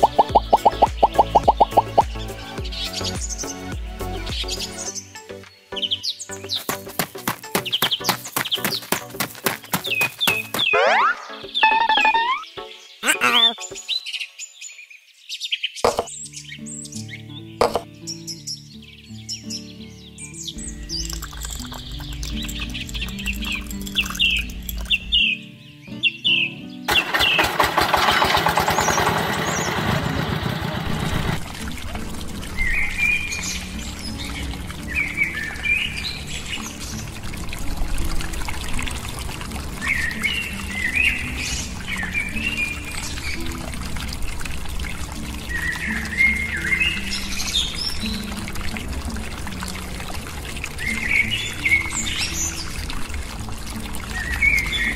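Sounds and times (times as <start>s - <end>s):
birds chirping: 0.0s - 3.7s, 4.3s - 27.7s, 39.8s - 43.5s, 45.4s - 48.4s
light background music: 0.0s - 14.5s, 15.9s - 27.0s, 31.4s - 54.9s
pouring rush: 6.6s - 10.7s, 20.9s - 25.1s, 26.9s - 54.9s.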